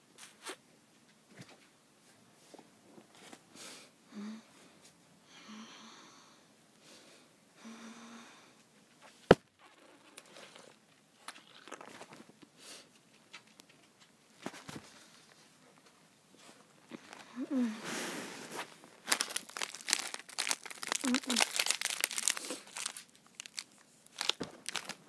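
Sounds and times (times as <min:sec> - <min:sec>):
mouth and handling noises: 0:09.0 - 0:25.0.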